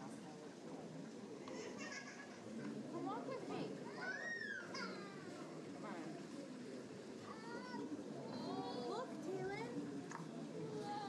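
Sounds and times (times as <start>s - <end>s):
chatter of visitors: 0.0s - 11.0s.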